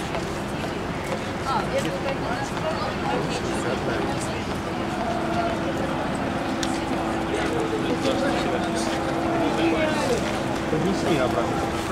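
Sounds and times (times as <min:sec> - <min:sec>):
indistinct voices: 0:00.0 - 0:11.9
trolleybus interior hum: 0:00.0 - 0:11.9.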